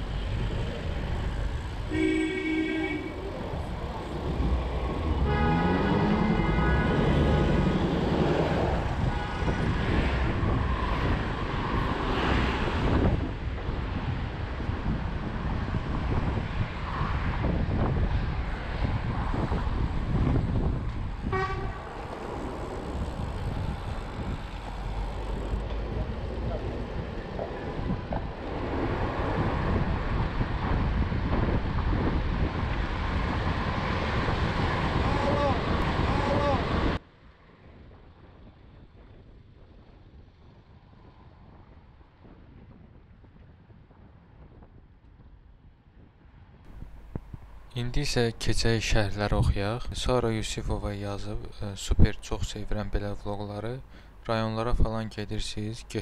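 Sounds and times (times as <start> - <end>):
vehicles passing close by: 0.0 - 44.4
bicycle road noise: 0.0 - 49.4
vehicle horn: 1.9 - 3.3, 5.1 - 7.7, 9.0 - 9.7, 21.2 - 22.0.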